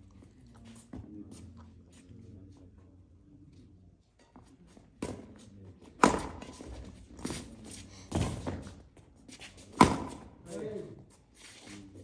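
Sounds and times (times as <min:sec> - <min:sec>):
rackets hitting shuttlecock: 0:06.0 - 0:06.6, 0:09.7 - 0:10.3.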